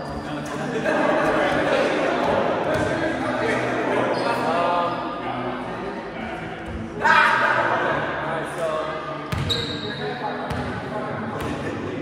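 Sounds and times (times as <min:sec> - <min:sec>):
players' voices echoing: 0:00.0 - 0:12.0
brief high squeak: 0:09.5 - 0:10.0.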